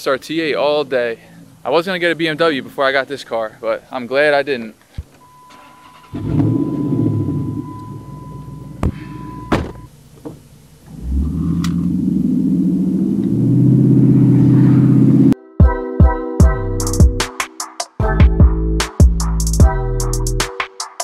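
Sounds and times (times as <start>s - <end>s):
electronic chime tone: 5.2s - 9.9s
car engine starting and revving: 5.6s - 15.4s.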